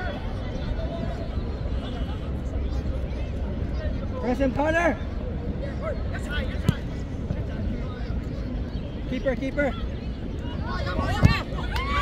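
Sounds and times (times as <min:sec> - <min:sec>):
faint shouts and chatter: 0:00.0 - 0:12.0
football being kicked: 0:06.6 - 0:06.8.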